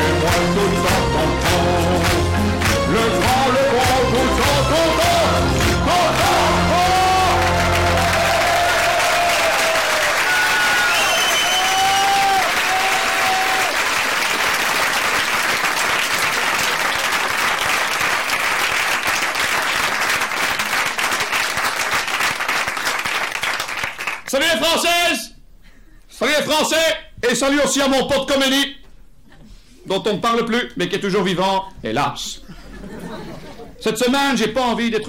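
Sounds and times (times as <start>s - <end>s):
live song singing and playing: 0.0s - 8.2s
audience applause: 2.0s - 24.3s.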